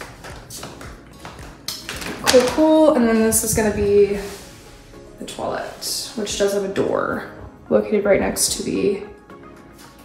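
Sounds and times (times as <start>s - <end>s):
music with tapping beat: 0.0s - 5.5s, 7.0s - 10.0s.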